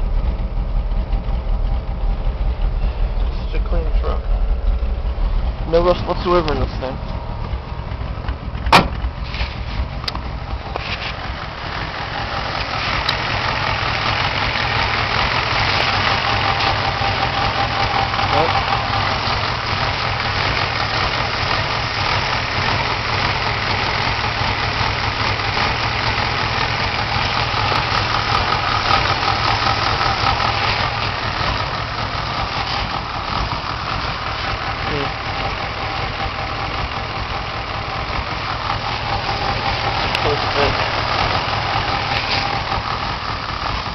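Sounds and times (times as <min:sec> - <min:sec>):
car engine idling: 0:00.0 - 0:43.9.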